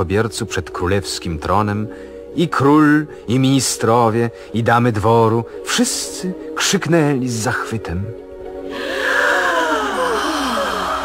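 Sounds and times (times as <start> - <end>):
group crying out in admiration: 8.8 - 11.0.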